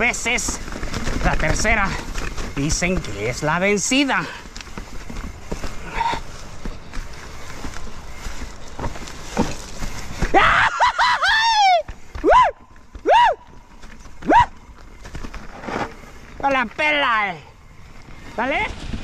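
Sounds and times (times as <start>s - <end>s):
mountain bike rattling over rocks: 0.0s - 19.0s
rider shouting: 10.3s - 13.5s, 14.2s - 14.6s.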